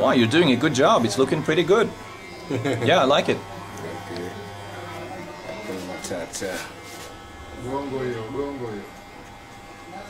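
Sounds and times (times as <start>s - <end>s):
faint voices: 0.0s - 10.0s
hair clippers buzzing: 0.0s - 10.0s.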